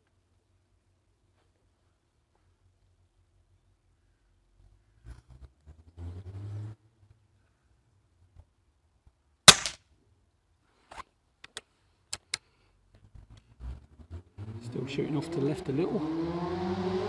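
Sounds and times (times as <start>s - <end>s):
air rifle shot: 9.5s - 9.8s
rifle action clicks: 9.5s - 9.8s.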